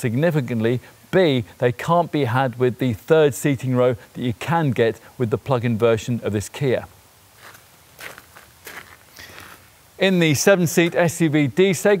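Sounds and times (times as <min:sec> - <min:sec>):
footsteps on gravel: 0:07.4 - 0:09.7, 0:10.7 - 0:11.1.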